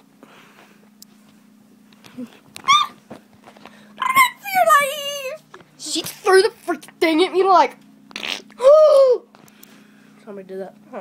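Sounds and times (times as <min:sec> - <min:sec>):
steady low hum: 0:00.0 - 0:11.0
short high-pitched yelp: 0:02.7 - 0:03.0, 0:04.0 - 0:05.1.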